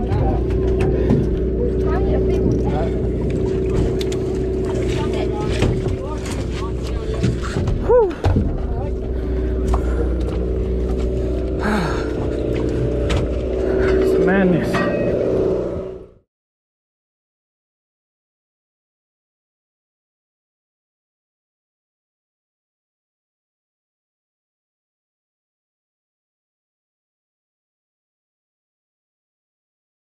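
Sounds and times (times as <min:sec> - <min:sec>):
background voices: 0:00.0 - 0:16.0
boat engine drone: 0:00.0 - 0:16.3.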